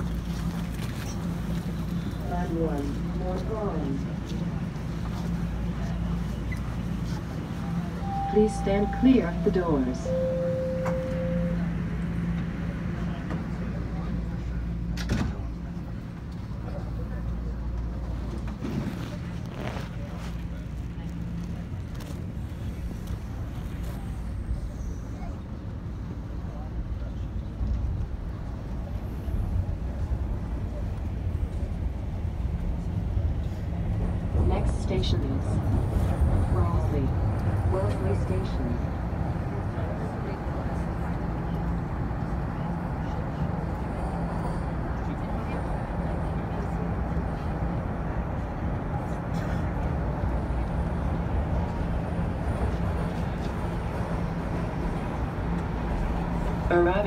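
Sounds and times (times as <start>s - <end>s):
subway train rumble and rattle: 0.0s - 57.0s
door chime: 10.1s - 11.6s.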